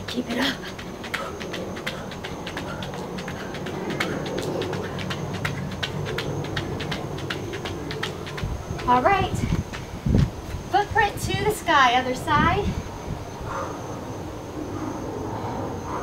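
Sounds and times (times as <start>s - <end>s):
sneakers jogging on exercise mat: 0.0s - 11.0s.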